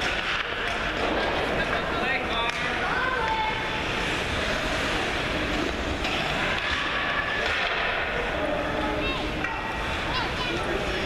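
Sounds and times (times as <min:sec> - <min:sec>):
spectators talking and shouting: 0:00.0 - 0:11.0
steady hall noise: 0:00.0 - 0:11.0.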